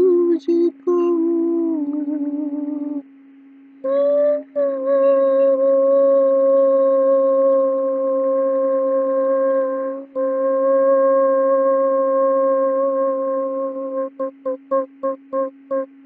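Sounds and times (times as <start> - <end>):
man humming long notes: 0.0 - 3.0, 3.8 - 16.0
low drone: 3.9 - 15.9.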